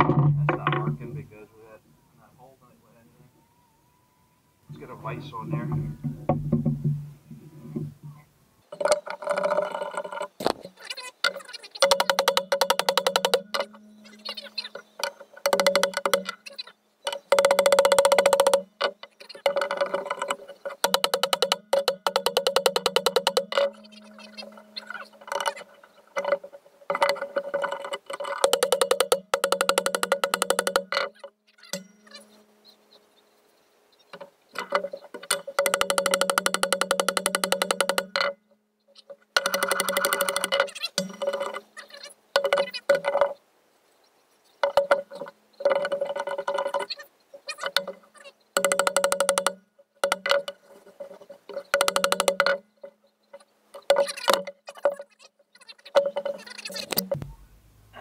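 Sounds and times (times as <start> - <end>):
iron ringing: 11.8 - 16.5, 17.1 - 33.2.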